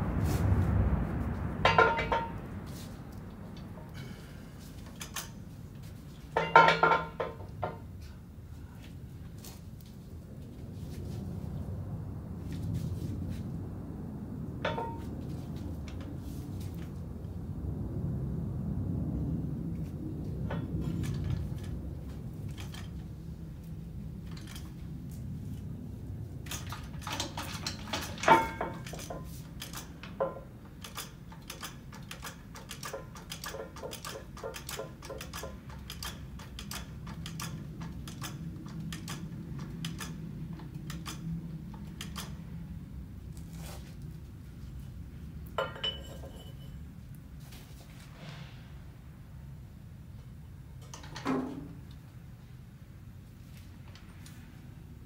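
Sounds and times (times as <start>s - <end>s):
low shop hum: 0.0s - 55.0s
metal clank: 1.6s - 2.5s, 6.3s - 7.9s, 14.6s - 15.1s, 26.4s - 41.2s, 45.6s - 46.8s.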